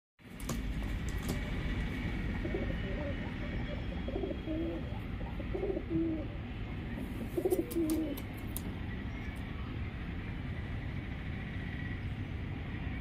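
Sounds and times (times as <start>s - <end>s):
steady low rumble: 0.3s - 13.0s
pigeons cooing: 2.3s - 6.4s, 7.0s - 8.4s.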